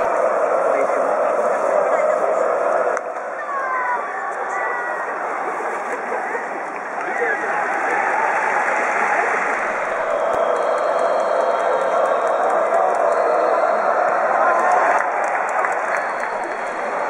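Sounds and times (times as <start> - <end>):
crowd clapping and cheering: 0.0 - 17.0.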